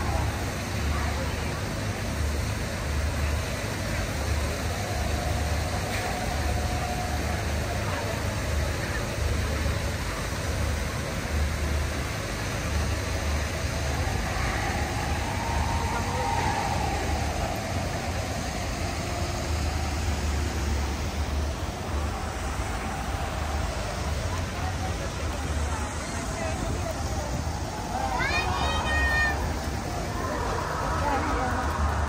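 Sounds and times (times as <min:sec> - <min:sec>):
even rush of noise: 0:00.0 - 0:32.0
faint background voices: 0:00.0 - 0:32.0
low rumble: 0:00.0 - 0:32.0.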